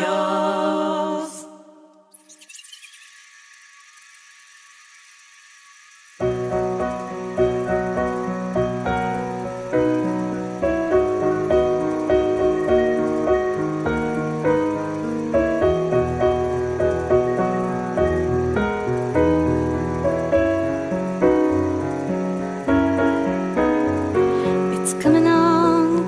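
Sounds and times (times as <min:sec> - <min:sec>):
faint steady hiss: 0:03.0 - 0:26.0
instrumental music with piano: 0:06.1 - 0:26.0.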